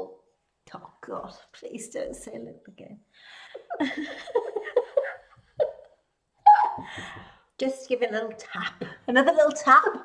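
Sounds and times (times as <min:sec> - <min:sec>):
woman laughing: 0:03.5 - 0:07.2.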